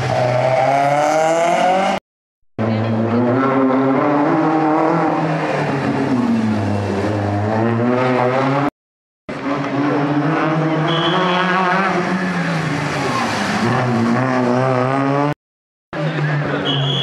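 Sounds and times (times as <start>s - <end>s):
rally car engine revving: 0.0s - 2.0s, 2.6s - 8.7s, 9.3s - 15.4s.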